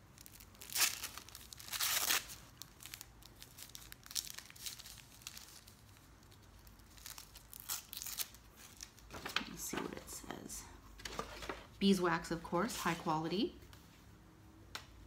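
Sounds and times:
wrapping tearing: 0.0 - 9.1
wrapping crinkling: 0.0 - 9.8.

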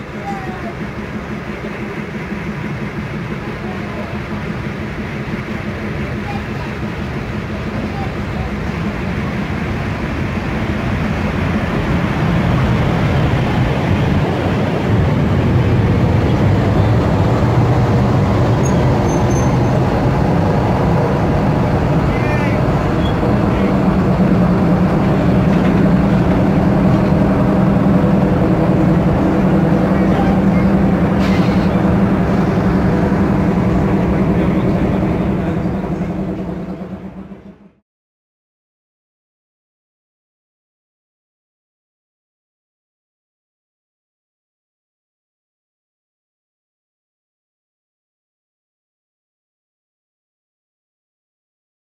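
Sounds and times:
electric train arriving: 0.0 - 37.8
brief wheel squeal: 18.6 - 19.8.

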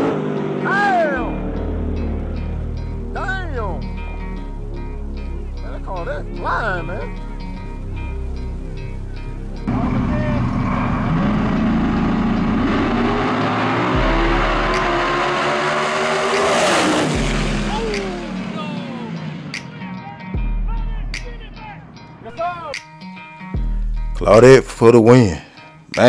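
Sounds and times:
drag car engines revving: 0.0 - 3.0, 9.7 - 19.8
music with low beat: 1.3 - 9.7, 12.0 - 24.8.

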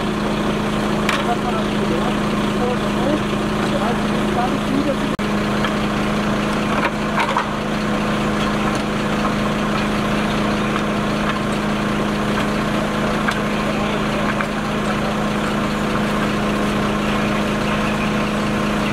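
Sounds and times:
truck engine idling: 0.0 - 18.9.

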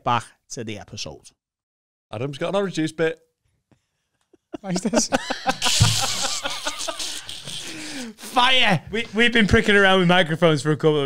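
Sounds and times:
men laughing: 4.2 - 8.2.

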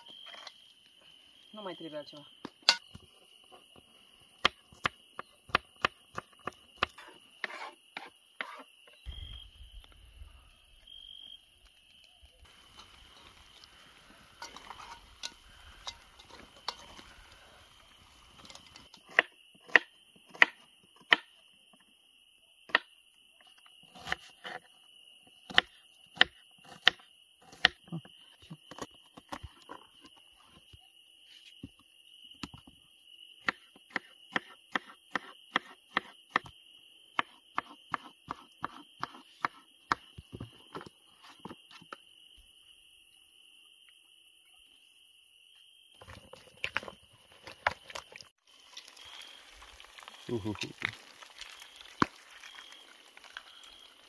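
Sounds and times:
crickets trilling: 0.0 - 54.0
food sizzling in a frying pan: 12.4 - 18.9, 48.4 - 54.0.

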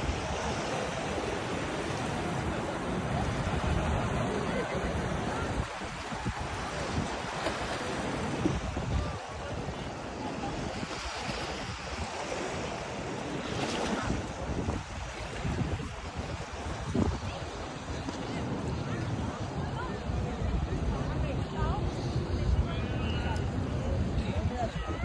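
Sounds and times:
small waves washing on sand: 0.0 - 25.0
wind on microphone: 0.0 - 25.0.

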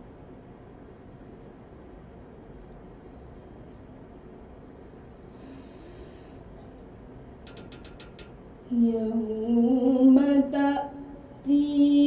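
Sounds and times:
sharp ratcheting clicks: 7.4 - 8.4.

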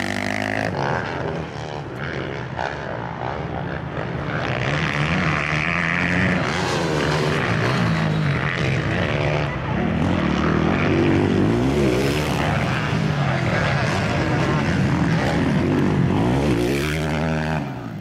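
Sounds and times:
motocross bike engines revving: 0.0 - 18.0.

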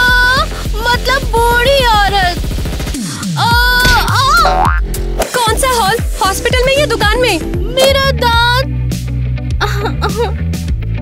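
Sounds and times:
upbeat background music: 0.0 - 11.0
cartoon falling boing: 4.0 - 4.8.

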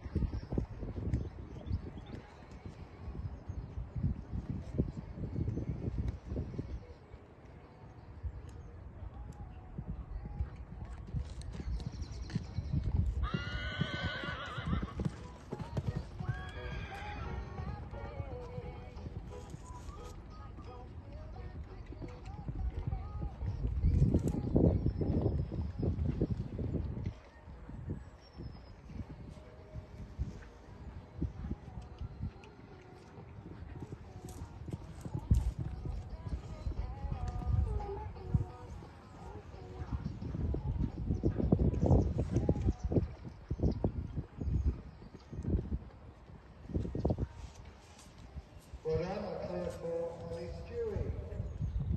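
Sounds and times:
muffled hoofbeats on sand: 0.0 - 51.9
horse whinnying: 13.2 - 15.2, 16.2 - 17.6.

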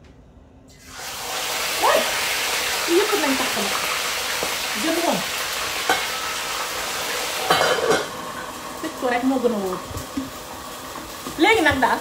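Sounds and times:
food sizzling in a pan: 0.7 - 12.0.

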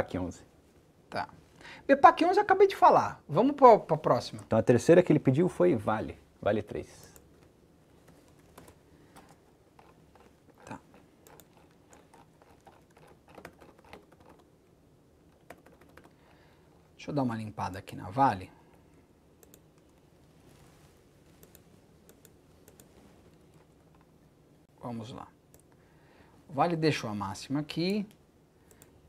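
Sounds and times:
computer mouse clicks: 8.0 - 14.5, 19.4 - 20.0, 21.4 - 24.1, 27.9 - 28.9
keyboard keystrokes: 8.3 - 14.5, 15.3 - 16.1.

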